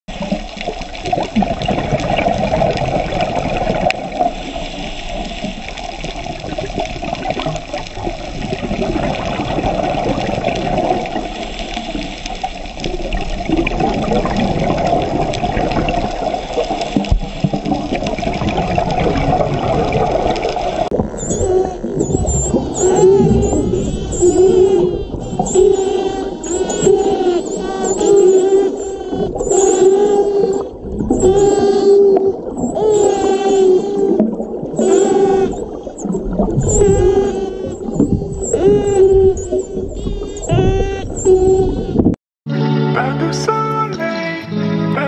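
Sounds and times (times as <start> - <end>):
underwater rushing water: 0.1 - 42.2
dolphins whistling: 21.1 - 42.0.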